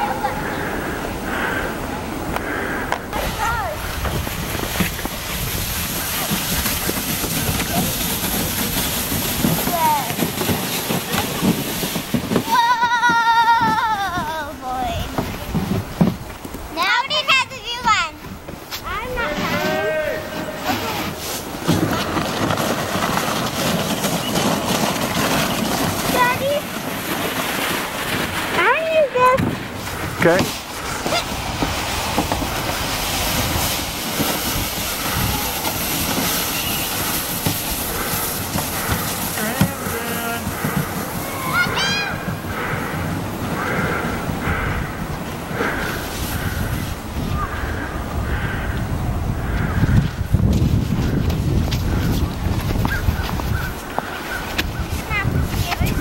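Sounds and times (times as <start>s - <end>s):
sleds scraping over icy snow: 0.0s - 56.0s
children shrieking and calling: 12.4s - 14.6s, 19.0s - 21.0s, 41.2s - 42.4s.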